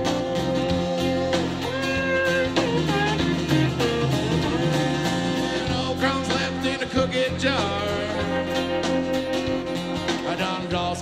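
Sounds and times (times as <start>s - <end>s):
drums: 0.0s - 11.0s
electric guitar lead: 0.0s - 11.0s
strummed acoustic guitar: 0.0s - 11.0s.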